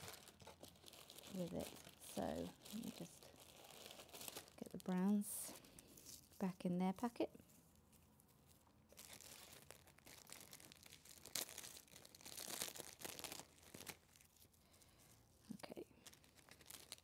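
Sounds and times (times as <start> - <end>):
paper strips rustling and crinkling: 0.0 - 6.5, 7.1 - 15.1, 15.7 - 17.0.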